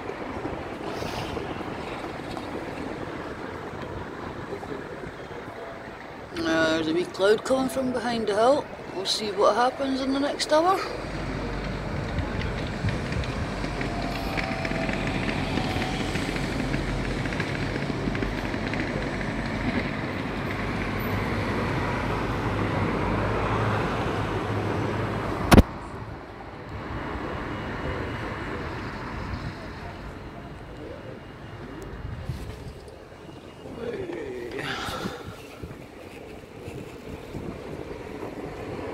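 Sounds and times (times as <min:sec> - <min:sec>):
distant traffic rumble: 0:00.0 - 0:38.9
sharp click: 0:25.5 - 0:25.7.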